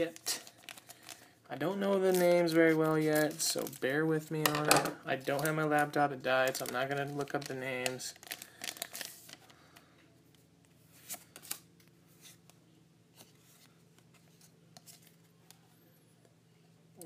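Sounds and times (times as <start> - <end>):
foil wrapper crinkling: 0.0 - 4.0, 5.1 - 9.5.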